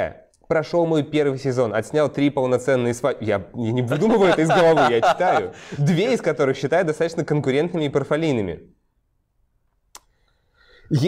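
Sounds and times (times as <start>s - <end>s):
man reading aloud: 3.9s - 6.9s.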